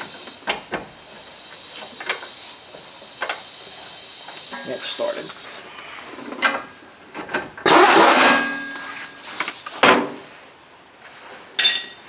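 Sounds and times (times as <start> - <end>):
ringing metal clank: 11.6 - 12.0
sharp metal knocks: 11.6 - 12.0.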